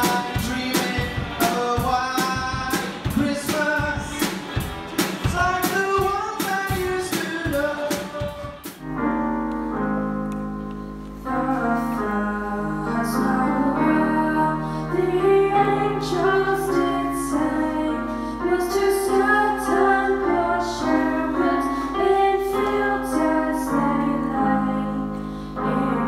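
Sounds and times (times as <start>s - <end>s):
man singing: 0.0s - 4.4s, 5.2s - 8.7s
electric guitars: 0.0s - 9.0s
drum kit: 0.0s - 9.1s.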